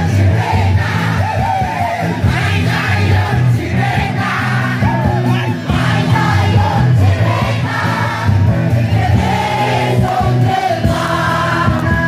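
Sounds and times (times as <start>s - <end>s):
bass and drumbeat: 0.0s - 12.0s
live band music: 0.0s - 12.0s
several voices singing: 0.0s - 12.0s.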